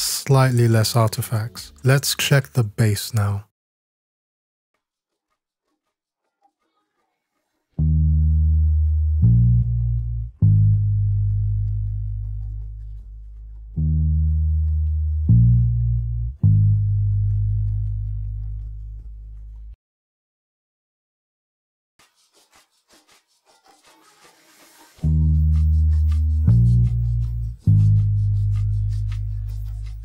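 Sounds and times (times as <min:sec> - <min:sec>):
sustained bass notes: 0:07.8 - 0:19.8, 0:25.0 - 0:30.0.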